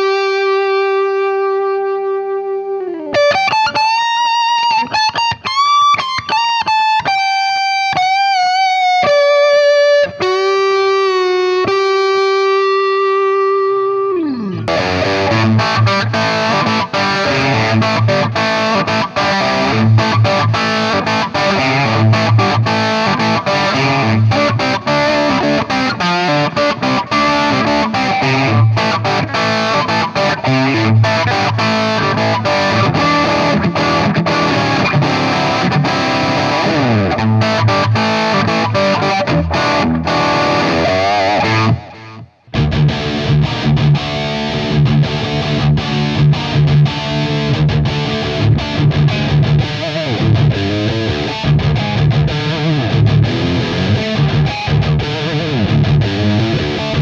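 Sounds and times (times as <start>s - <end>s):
distorted electric guitar: 0.0s - 57.0s.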